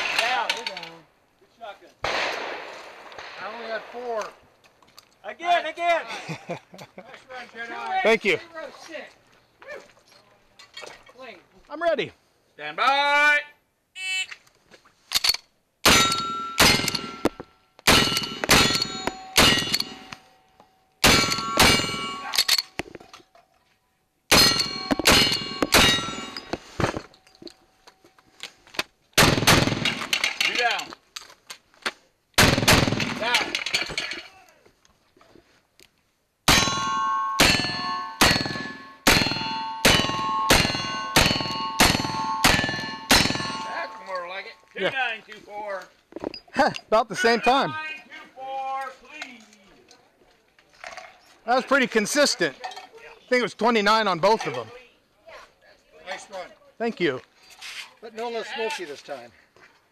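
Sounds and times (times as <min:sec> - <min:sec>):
steel target ringing: 0:15.9 - 0:20.4, 0:21.0 - 0:22.5, 0:24.3 - 0:26.8, 0:36.5 - 0:44.3
heavy gun blasts: 0:29.2 - 0:30.1, 0:32.4 - 0:33.4.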